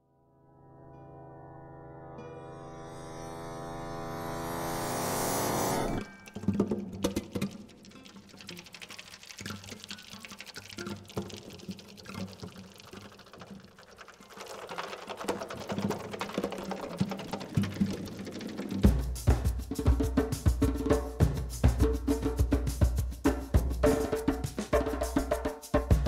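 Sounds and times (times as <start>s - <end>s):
sparse music of clicks and taps: 6.2s - 14.2s.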